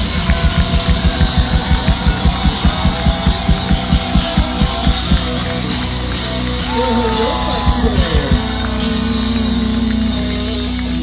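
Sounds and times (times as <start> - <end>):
fast drum beat: 0.0 - 10.2
distorted electric guitars: 0.0 - 11.0.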